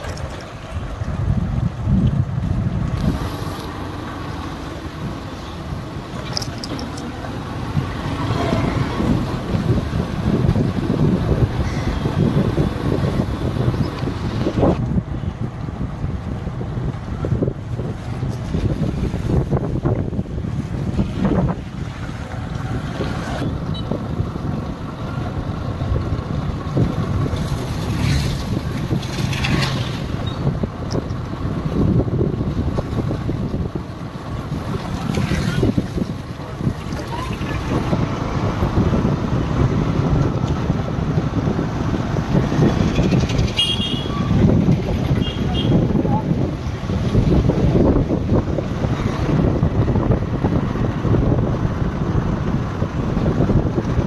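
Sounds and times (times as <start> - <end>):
wet street ambience: 0.0 - 54.0
wind buffeting microphone: 0.0 - 54.0.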